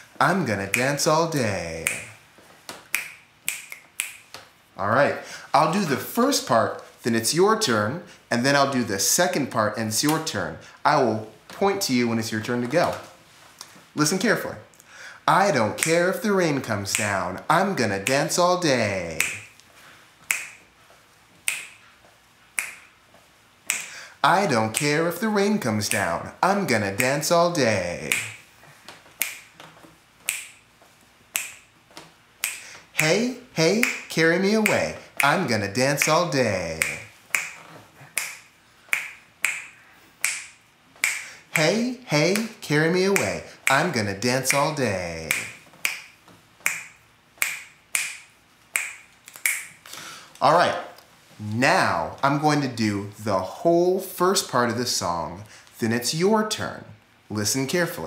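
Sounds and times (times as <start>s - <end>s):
finger snaps: 0.7s - 1.2s, 1.8s - 4.5s, 16.9s - 17.2s, 18.0s - 20.7s, 21.4s - 21.9s, 22.6s - 22.9s, 23.7s - 25.0s, 28.0s - 30.6s, 31.3s - 33.2s, 33.8s - 41.7s, 44.5s - 50.1s.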